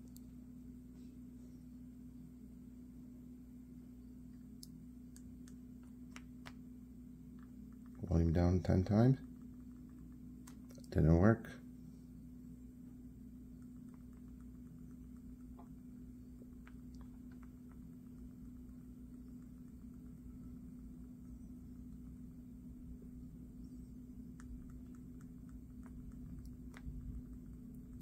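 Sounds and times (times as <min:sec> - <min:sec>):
low hum: 0:00.0 - 0:28.0.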